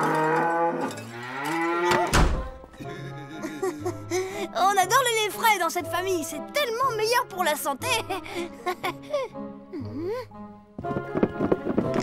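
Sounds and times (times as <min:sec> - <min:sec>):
cows mooing: 0:00.0 - 0:02.2
loud thump: 0:02.1 - 0:02.6.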